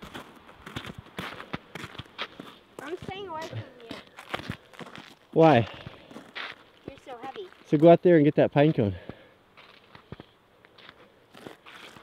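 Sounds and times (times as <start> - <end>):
footsteps crunching on snowy ice: 0.0 - 8.0, 8.7 - 12.0.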